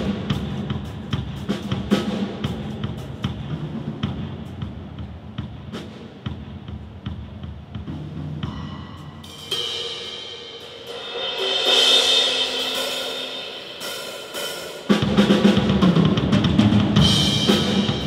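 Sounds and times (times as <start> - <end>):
drum kit playing fast: 0.0 - 18.0
ringing cymbals: 8.4 - 14.9.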